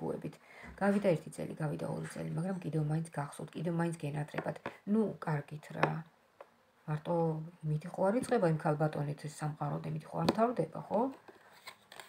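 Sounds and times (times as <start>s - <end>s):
woman speaking: 0.0s - 6.1s, 6.8s - 11.2s.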